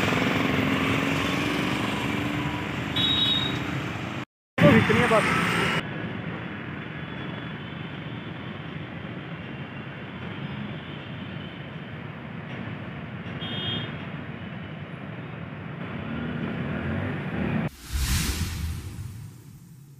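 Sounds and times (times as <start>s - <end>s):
road traffic: 0.0s - 19.9s.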